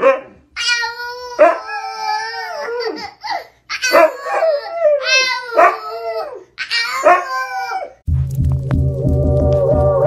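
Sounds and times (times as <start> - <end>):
toddler laughing and shouting: 0.6 - 8.0
dog howling: 3.8 - 8.0.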